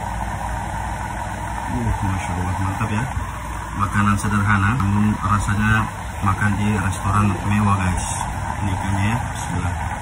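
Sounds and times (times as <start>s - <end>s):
steady mechanical hum: 0.0s - 10.0s.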